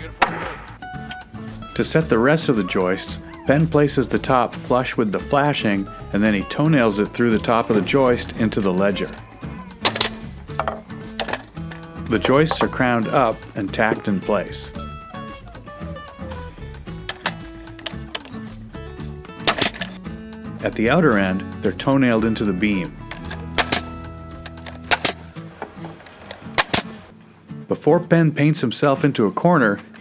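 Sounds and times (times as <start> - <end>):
background music: 0.0 - 30.0
nail gun firing: 0.2 - 0.7, 19.5 - 20.0, 23.3 - 23.9, 24.8 - 25.2, 26.5 - 27.0
wood knocks: 0.2 - 0.7, 10.5 - 10.9.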